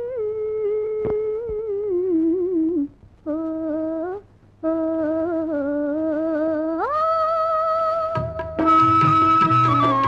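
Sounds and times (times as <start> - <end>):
woman humming a melody: 0.0 - 9.9.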